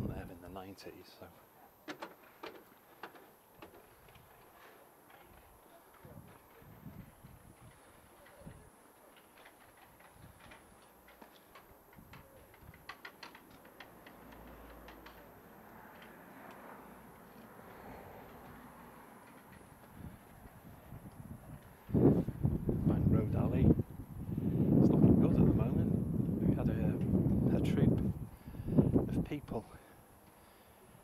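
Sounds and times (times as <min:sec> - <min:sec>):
soft rush of distant noise: 0:00.0 - 0:31.0
faint clicks and footsteps: 0:01.8 - 0:22.8.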